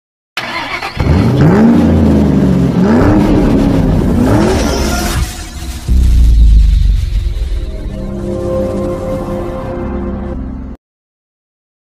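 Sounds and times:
car engine revving: 0.4s - 9.1s.

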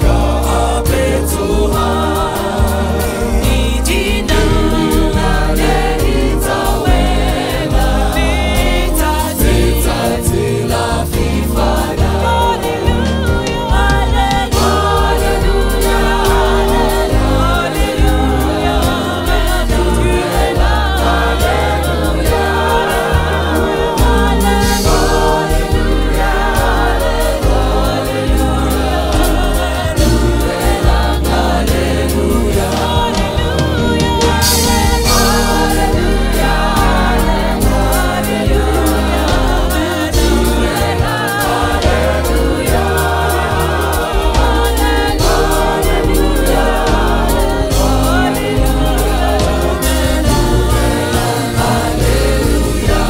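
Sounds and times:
drum kit: 0.0s - 53.0s
keyboard: 0.0s - 53.0s
vocal group singing in harmony: 0.0s - 53.0s.

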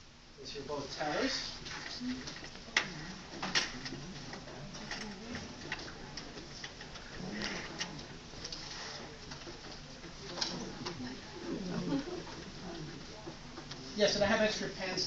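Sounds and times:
murmur of quiet voices: 0.0s - 15.0s.

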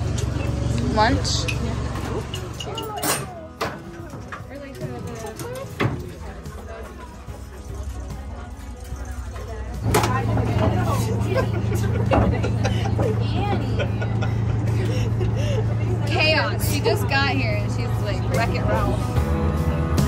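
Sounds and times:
boat engine droning: 0.0s - 2.7s, 6.2s - 20.0s
people chatting: 4.5s - 19.1s.

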